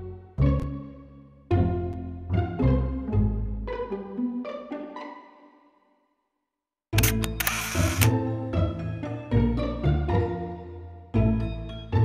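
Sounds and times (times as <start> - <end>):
music: 0.0 - 6.3, 6.9 - 12.0
camera shutter firing: 7.0 - 8.1.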